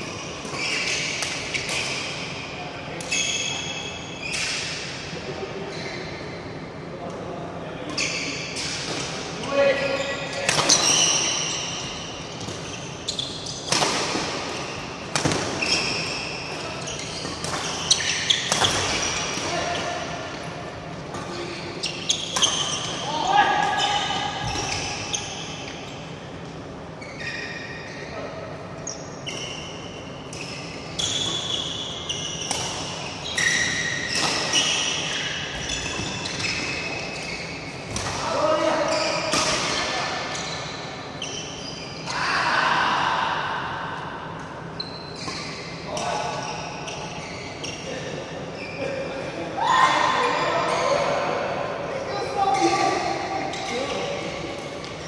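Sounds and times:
shoes squeaking on court: 0.1 - 2.4, 9.9 - 28.1, 28.8 - 42.1, 44.6 - 49.0.

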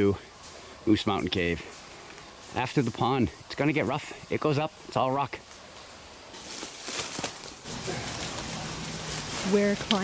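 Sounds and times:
footsteps on rock and leaves: 5.4 - 10.0
scuffing and rustling: 5.5 - 10.0.

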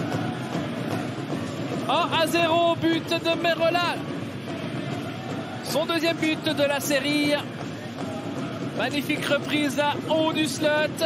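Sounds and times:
murmuring crowd: 0.0 - 2.8, 3.4 - 10.1.

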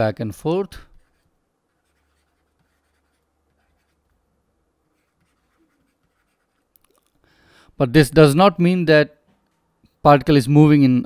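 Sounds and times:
stylus scratching and tapping on tablet: 0.9 - 7.2.

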